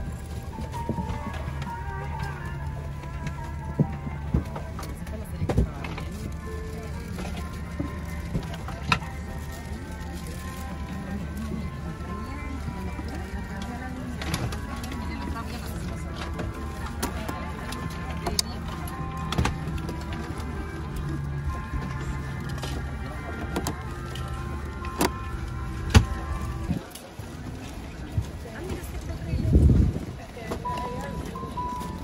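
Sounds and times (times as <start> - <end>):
indistinct passenger voices: 0.0 - 32.0
low cabin hum: 0.0 - 32.0
soft background music: 0.0 - 32.0.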